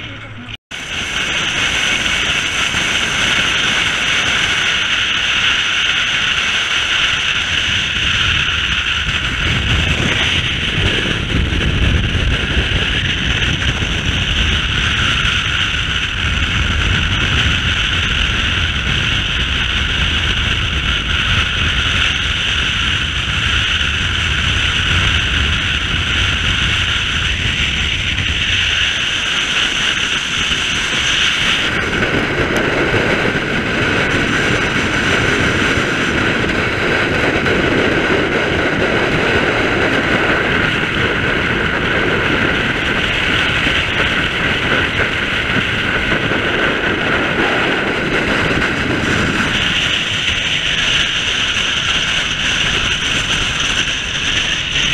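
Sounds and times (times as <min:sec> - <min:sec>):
road noise: 0:00.0 - 0:54.9
wind rush: 0:00.0 - 0:54.9.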